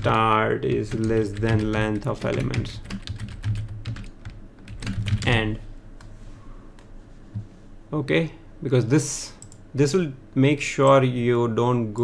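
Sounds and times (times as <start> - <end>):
computer keyboard typing: 0.0 - 5.5.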